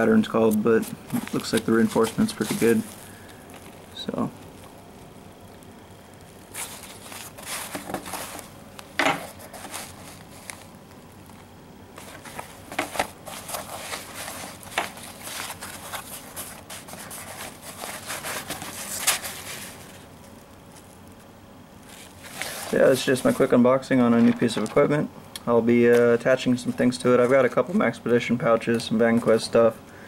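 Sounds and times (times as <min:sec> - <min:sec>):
nylon fabric rustling: 0:00.8 - 0:04.6, 0:06.4 - 0:11.4, 0:12.0 - 0:21.0, 0:21.8 - 0:23.6.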